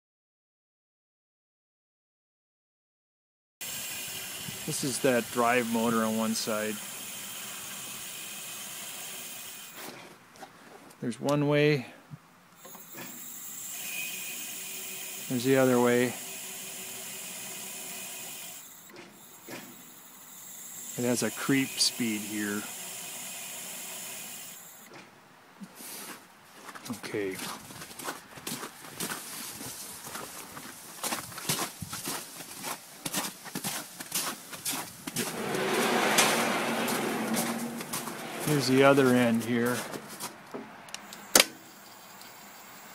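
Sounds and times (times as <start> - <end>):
crane motor hiss and whine: 3.6 - 9.8, 12.6 - 24.9, 35.1 - 39.5, 41.0 - 42.9
footsteps: 24.9 - 40.7.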